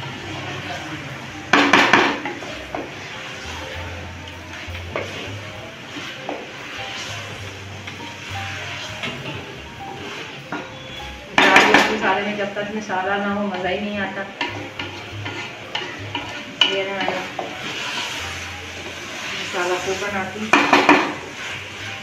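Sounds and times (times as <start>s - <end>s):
meat frying: 0.0s - 22.0s
wooden spatula scraping metal pot: 0.1s - 22.0s.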